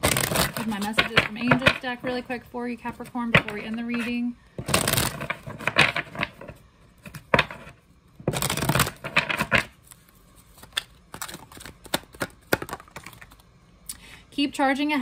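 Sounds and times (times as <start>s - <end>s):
cards shuffling: 0.0s - 2.2s, 3.0s - 7.7s, 8.3s - 13.5s.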